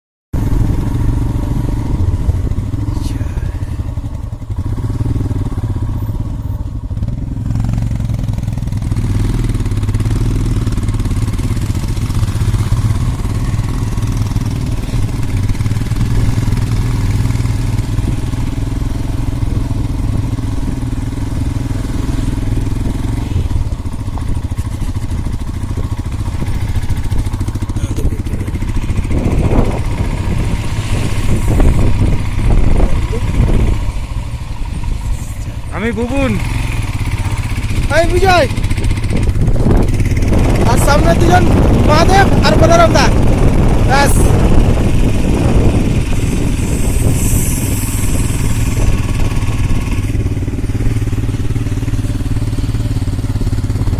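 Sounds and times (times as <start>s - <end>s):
motorcycle engine running: 0.4s - 53.9s
wind rushing over microphone: 0.4s - 53.9s.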